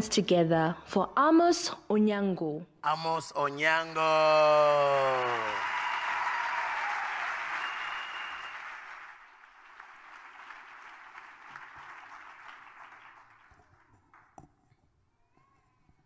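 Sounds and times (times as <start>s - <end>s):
audience applauding: 3.8s - 14.3s.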